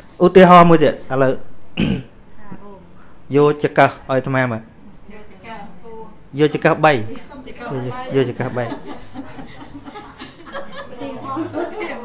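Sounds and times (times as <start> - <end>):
throat clearing: 1.8 - 2.2.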